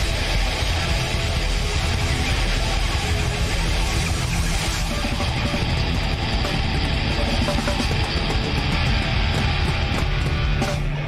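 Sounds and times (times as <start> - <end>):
drums: 0.0 - 11.0
electric guitar: 0.0 - 11.0.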